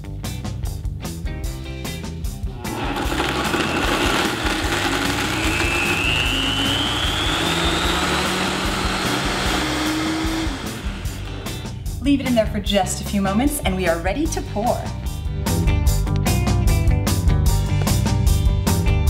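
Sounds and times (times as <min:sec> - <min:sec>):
blender motor whining: 0:02.6 - 0:11.9.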